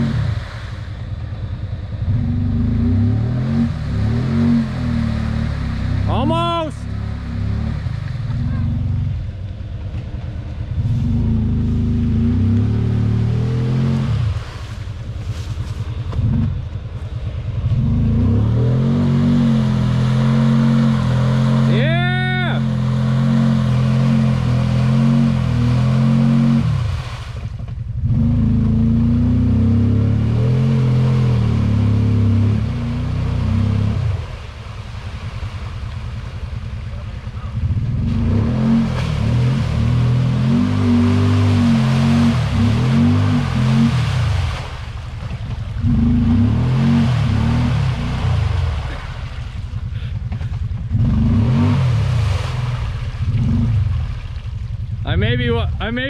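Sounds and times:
engine revving: 0.0s - 0.8s, 1.9s - 9.4s, 10.5s - 16.7s, 17.5s - 34.6s, 35.2s - 54.3s.

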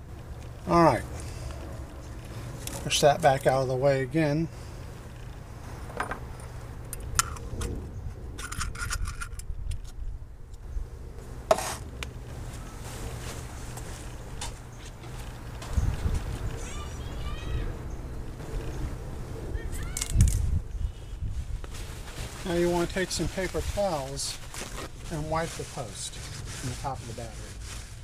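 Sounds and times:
low outdoor rumble: 0.0s - 28.0s.

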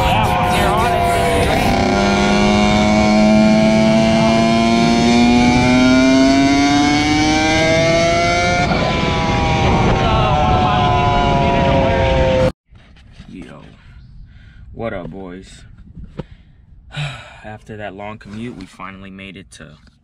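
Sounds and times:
dirt bike engine revving: 0.0s - 12.5s.

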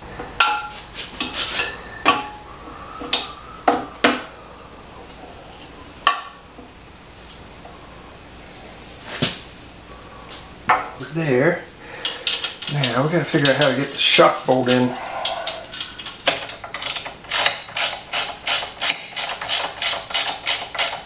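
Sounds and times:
hard parts clicking together: 12.0s - 13.8s, 14.6s - 21.0s.

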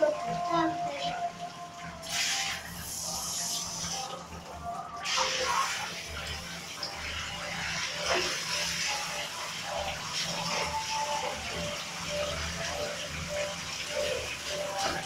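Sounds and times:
shower spray splashing into bathtub: 1.9s - 4.4s, 5.0s - 15.0s.

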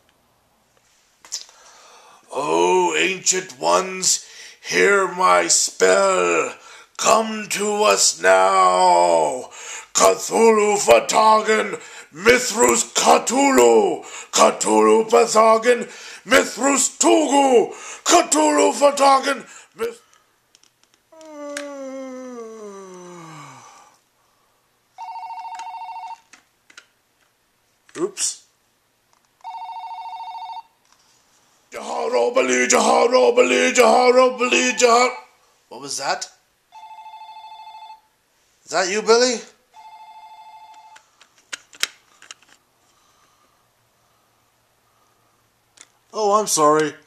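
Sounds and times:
person moaning: 21.1s - 23.9s
phone ringing: 25.0s - 26.3s, 29.4s - 30.8s, 36.7s - 38.1s, 39.7s - 41.1s.

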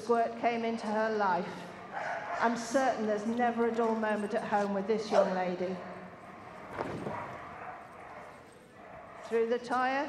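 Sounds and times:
indoor arena background noise: 0.0s - 10.0s.

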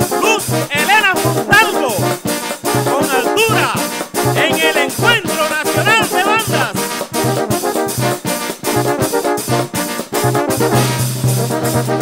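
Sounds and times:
brass band music: 0.0s - 12.0s
sliding horn notes: 0.0s - 12.0s.

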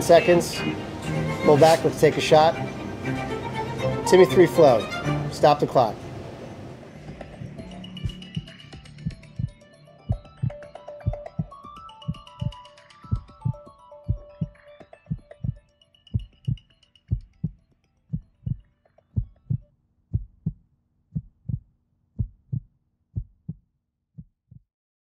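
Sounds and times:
soft music: 0.0s - 19.6s
heartbeat thumps: 7.2s - 15.6s, 16.2s - 18.6s, 19.2s - 21.6s, 22.2s - 23.6s, 24.2s - 24.6s.

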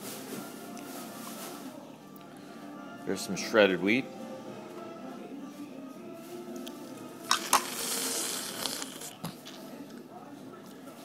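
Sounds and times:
faint background music: 0.0s - 11.0s
hissy slurping: 7.3s - 9.6s.

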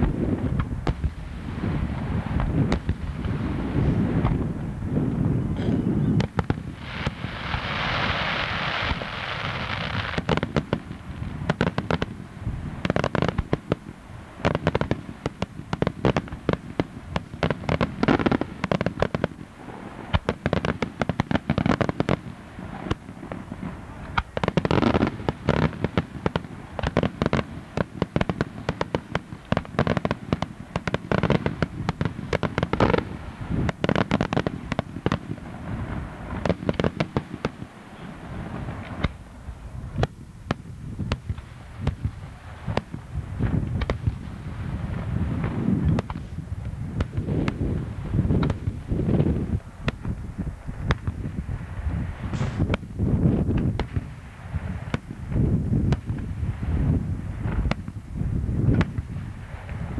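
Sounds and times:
fireworks bangs and crackling: 0.0s - 59.9s
fireworks hiss: 0.0s - 59.9s.

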